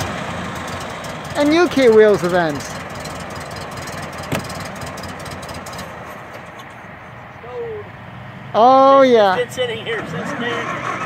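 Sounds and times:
engine cranking without starting: 0.0 - 6.6, 10.2 - 11.0.

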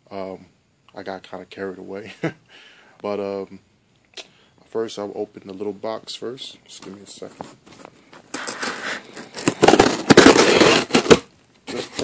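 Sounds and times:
cardboard box crackling and scraping: 8.3 - 11.2.

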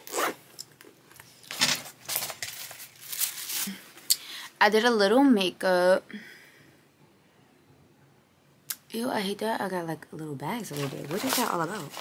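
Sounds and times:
boot zipper being pulled: 0.0 - 0.4, 10.7 - 12.0.

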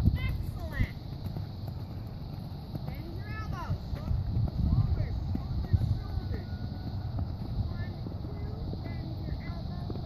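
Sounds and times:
horse hoofbeats on sand: 0.0 - 10.0
wind rumbling on microphone: 0.0 - 10.0.

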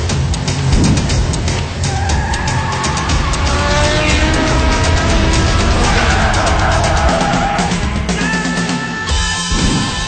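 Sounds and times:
car engine: 0.0 - 8.1
tyres squealing: 1.8 - 7.8
loud music with steady beat: 2.9 - 10.0.

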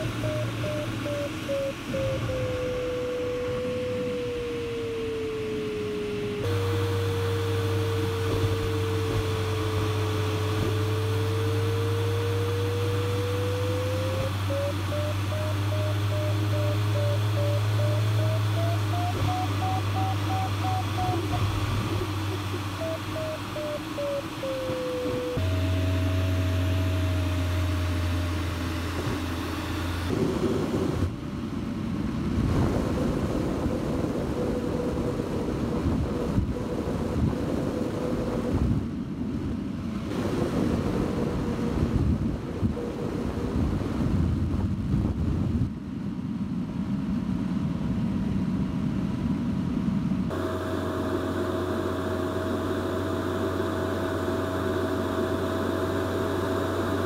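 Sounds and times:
variometer beeping tone: 0.0 - 4.3, 12.4 - 27.2
cockpit airflow hum: 0.0 - 57.0.

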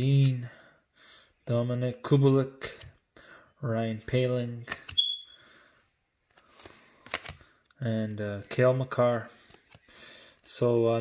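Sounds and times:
cards sliding: 6.3 - 7.5, 9.4 - 10.5.

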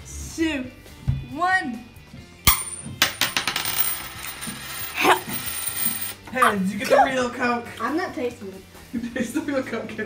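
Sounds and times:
coin bouncing on wooden table: 2.5 - 6.2.

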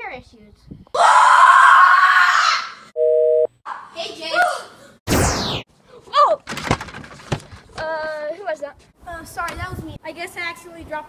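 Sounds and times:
boy screaming: 1.0 - 2.8.

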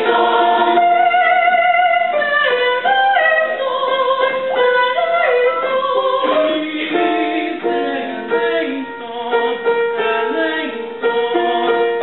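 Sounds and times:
mixed choir singing: 0.0 - 12.0.

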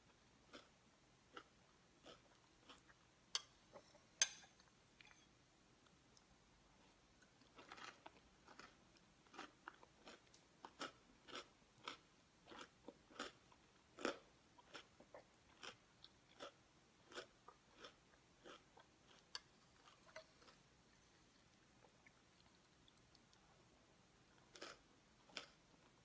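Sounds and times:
chewing crunchy cereal: 1.3 - 3.0, 6.8 - 23.6, 24.3 - 26.0.

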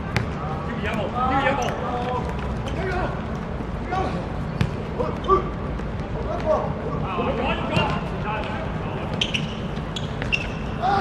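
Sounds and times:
football kicked on hard court: 4.6 - 4.8
people calling out: 10.7 - 11.0.

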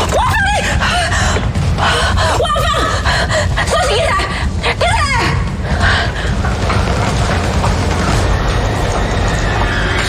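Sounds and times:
low rumble: 0.0 - 10.0.

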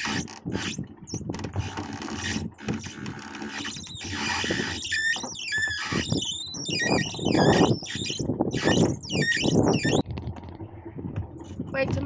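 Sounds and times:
dinghy hoist squeaking: 0.0 - 10.0.

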